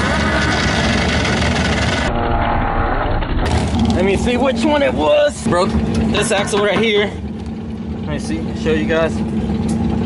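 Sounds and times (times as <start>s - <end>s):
rotary engine at full throttle: 0.0s - 10.0s.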